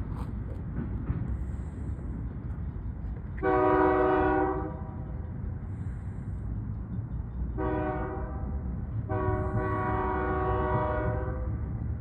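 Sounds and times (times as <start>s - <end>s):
locomotive air horn blast: 3.4s - 5.0s, 7.6s - 11.6s.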